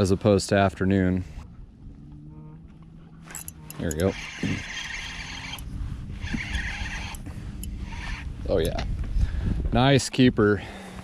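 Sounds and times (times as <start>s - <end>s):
fishing reel whirring: 3.2s - 8.8s.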